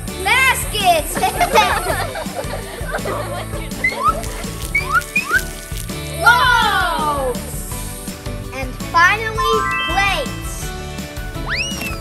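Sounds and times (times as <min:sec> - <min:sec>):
rising whistle-like notes: 0:11.4 - 0:11.9.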